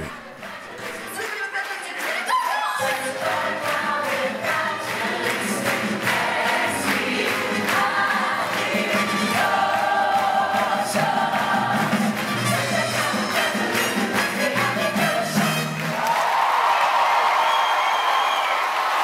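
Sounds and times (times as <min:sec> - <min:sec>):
choir singing with music: 0:00.0 - 0:16.1.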